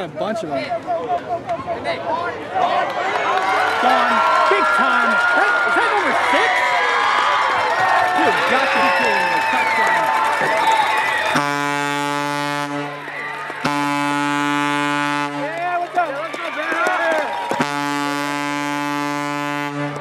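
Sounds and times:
voices: 0.0 - 11.2, 15.3 - 17.4
deep stadium horn blasts: 11.2 - 16.2, 16.8 - 20.0.

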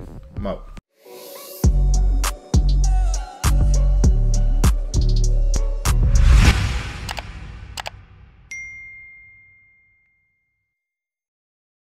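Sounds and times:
bell ding: 8.5 - 10.6.

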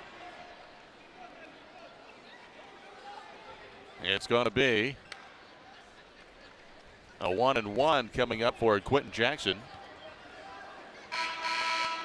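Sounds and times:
arena horn: 11.1 - 12.0.

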